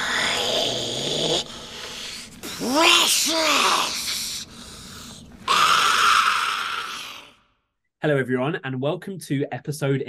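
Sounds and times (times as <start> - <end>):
raspy hissing throat noise: 0.0 - 6.1.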